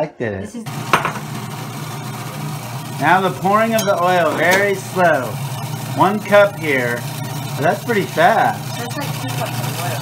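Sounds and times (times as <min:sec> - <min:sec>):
food processor motor running: 0:00.7 - 0:10.0.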